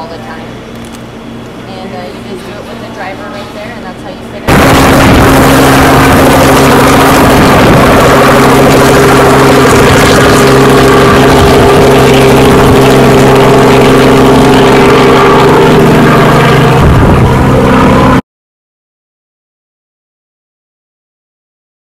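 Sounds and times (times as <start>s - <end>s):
helicopter engine and rotor: 0.0s - 18.2s.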